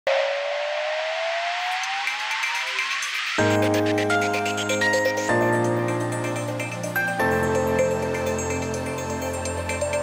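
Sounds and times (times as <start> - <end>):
synthesized riser with rising tone: 0.1 - 4.5.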